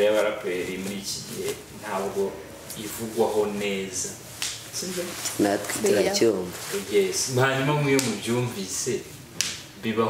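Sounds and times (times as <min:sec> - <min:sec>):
boy talking: 0:05.0 - 0:06.5.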